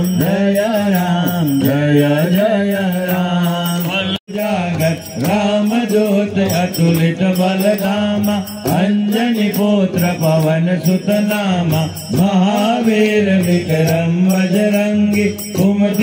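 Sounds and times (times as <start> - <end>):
jingling beat: 0.0 - 16.0
men chanting together: 0.0 - 16.0.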